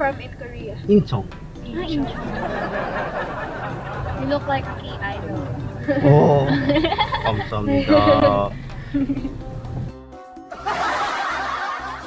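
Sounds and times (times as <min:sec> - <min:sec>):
background music: 0:00.0 - 0:12.0
young women giggling: 0:02.0 - 0:09.5.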